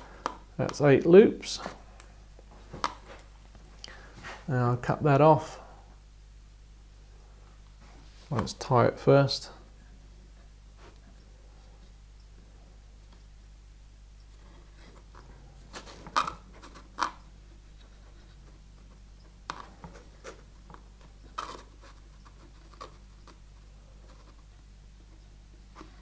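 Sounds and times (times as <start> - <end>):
fingers rubbing thread: 21.2 - 24.5.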